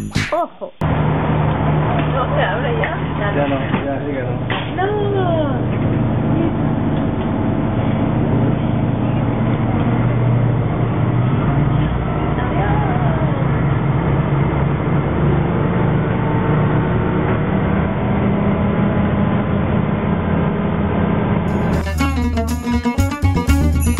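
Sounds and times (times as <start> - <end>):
train rumbling from inside carriage: 7.2 - 21.6.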